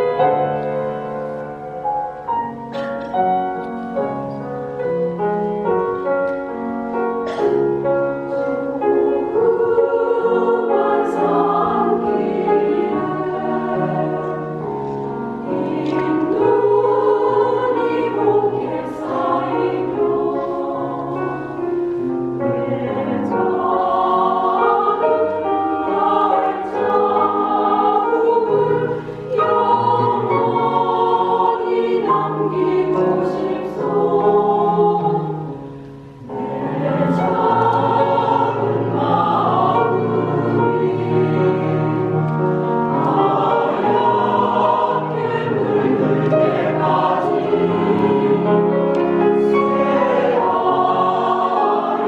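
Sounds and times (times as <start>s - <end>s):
mixed choir singing in harmony: 0.0s - 52.0s.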